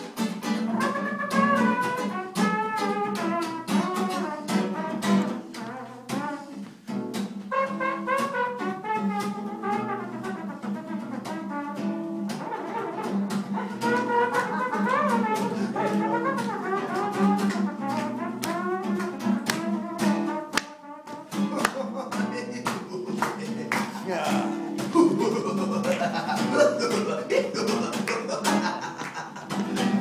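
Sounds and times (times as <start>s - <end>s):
acoustic guitar strumming: 0.0s - 30.0s
man singing: 14.6s - 17.0s, 21.4s - 29.5s.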